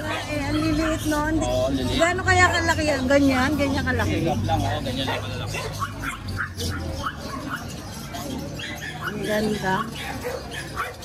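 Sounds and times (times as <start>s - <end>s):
puppies yipping: 0.0s - 11.0s.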